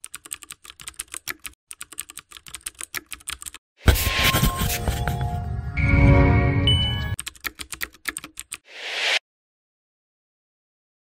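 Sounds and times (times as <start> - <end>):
rising whoosh: 8.7 - 9.2.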